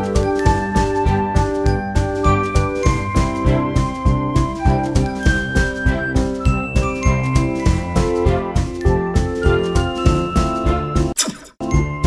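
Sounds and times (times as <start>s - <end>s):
background music with steady beat: 0.0s - 12.0s
chiming melody: 5.2s - 10.9s.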